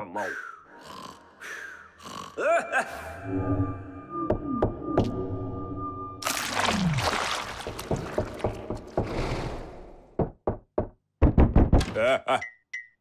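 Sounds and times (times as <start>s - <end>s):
knocking on a door: 10.2s - 11.8s.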